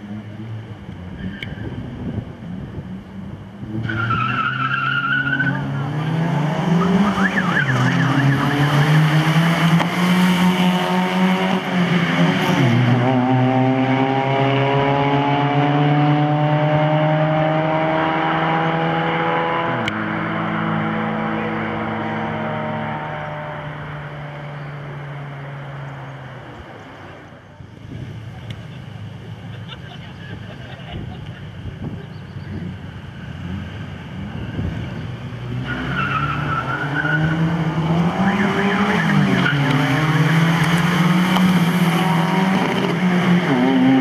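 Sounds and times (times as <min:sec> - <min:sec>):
car engines revving hard: 0:00.0 - 0:44.0.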